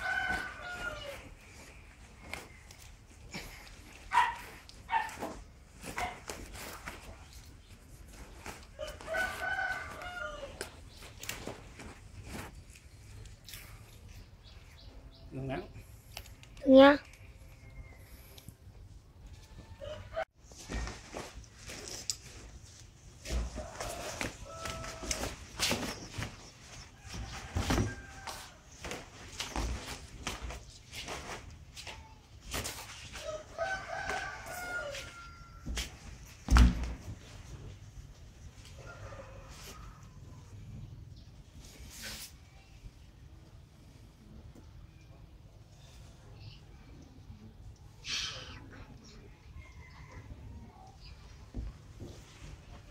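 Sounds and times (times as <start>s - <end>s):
rooster crowing: 0.0s - 1.4s, 8.8s - 10.7s, 23.5s - 25.4s, 33.2s - 35.9s.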